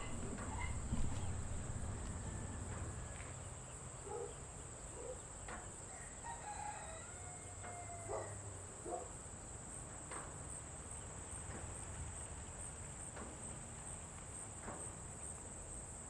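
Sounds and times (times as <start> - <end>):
chickens clucking: 0.0 - 3.0
rooster crowing: 0.0 - 3.7, 5.9 - 8.5.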